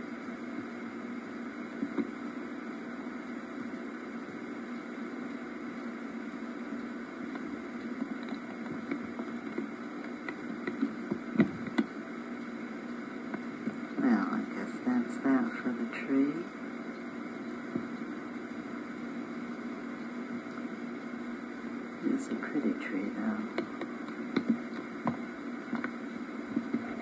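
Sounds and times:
tape hiss: 0.0s - 27.0s
faint clicks: 6.8s - 13.8s, 23.5s - 27.0s.

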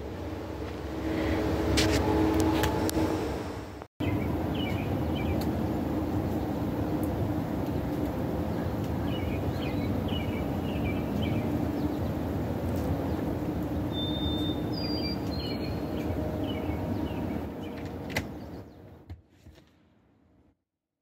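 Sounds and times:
steady low rumble: 0.0s - 13.9s
small birds chirping: 8.5s - 18.9s.

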